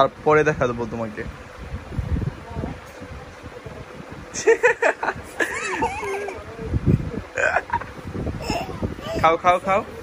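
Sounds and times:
small child giggling: 4.4 - 9.4.

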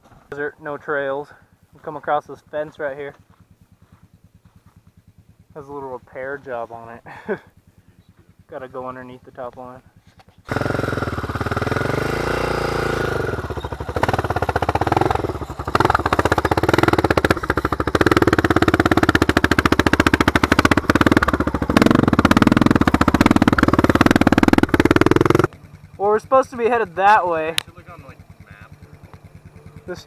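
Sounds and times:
quad engine revving: 10.5 - 30.0.

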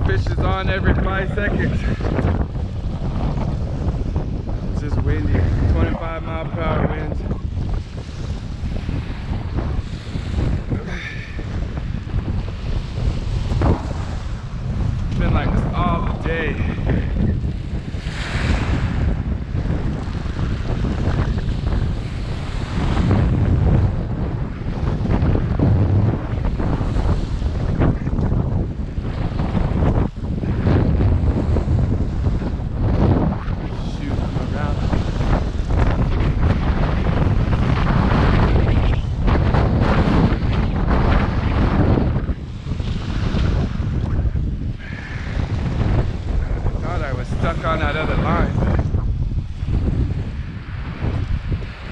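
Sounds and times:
gusty wind buffeting microphone: 0.0 - 51.9
small waves washing on shore: 0.0 - 51.9.

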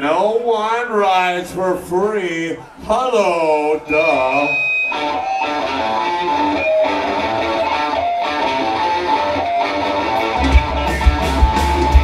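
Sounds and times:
man calling over pa system: 0.0 - 5.1.

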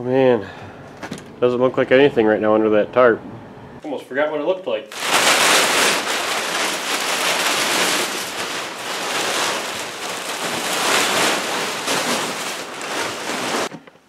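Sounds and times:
plastic tarp rustling and crinkling: 4.9 - 13.7.

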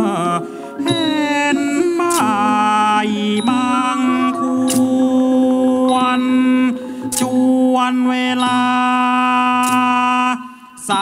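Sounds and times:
person singing long held notes: 0.0 - 11.0.

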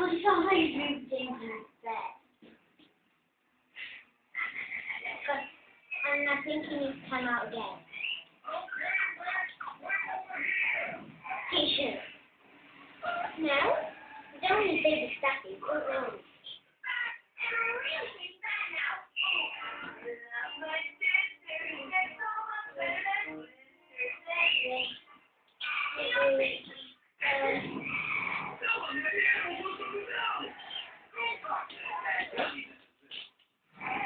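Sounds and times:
puppy growling in play: 27.3 - 28.6.

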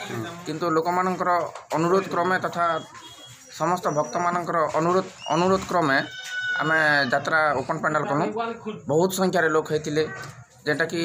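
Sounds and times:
man talking: 0.0 - 2.9, 3.5 - 11.0.

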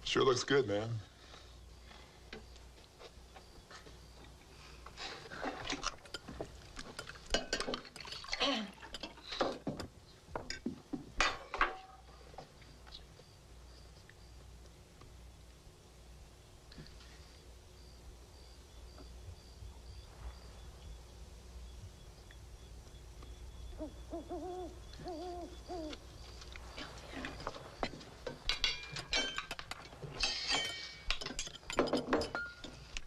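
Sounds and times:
cutlery and dishes clinking: 5.4 - 12.0, 27.9 - 32.8
owl hooting: 22.0 - 27.5.

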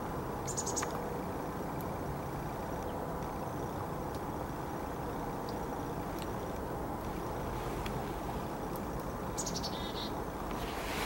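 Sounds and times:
low background rumble: 0.0 - 11.0
bird chirping: 0.5 - 0.9, 9.3 - 10.2.

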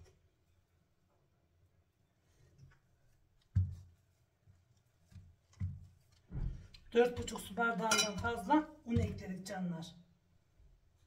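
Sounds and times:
hands kneading dough: 2.1 - 9.5.

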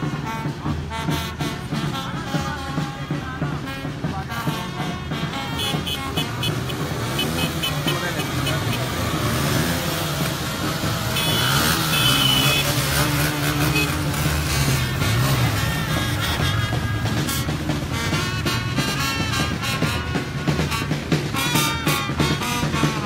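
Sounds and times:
motorcycle engines running: 0.0 - 23.0
music playing: 0.0 - 23.0.

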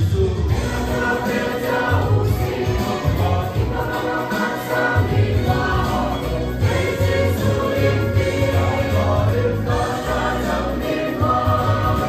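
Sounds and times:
church choir singing a hymn: 0.5 - 12.0.

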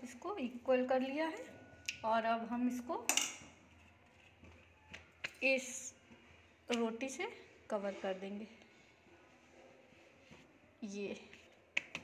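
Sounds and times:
hands patting dough on board: 11.3 - 12.0.

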